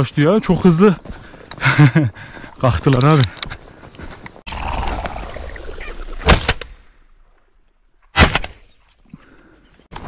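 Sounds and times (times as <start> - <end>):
shotgun shots: 8.1 - 8.6.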